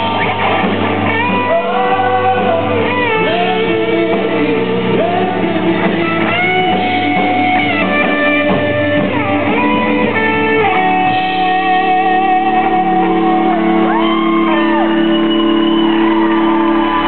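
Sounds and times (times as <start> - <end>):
bass: 0.0 - 17.0
guitar chords: 0.0 - 17.0
man singing: 1.2 - 15.0.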